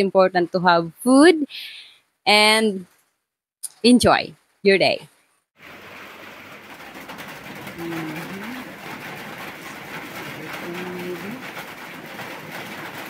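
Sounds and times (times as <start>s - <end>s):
steady rain: 5.6s - 13.0s.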